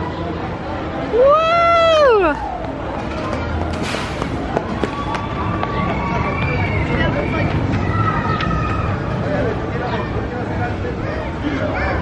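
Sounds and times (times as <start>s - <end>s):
roller coaster rattling along track: 2.8s - 12.0s.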